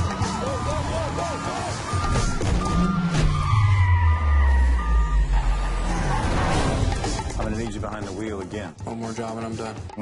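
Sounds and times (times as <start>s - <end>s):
car engine with falling note: 0.2s - 7.0s.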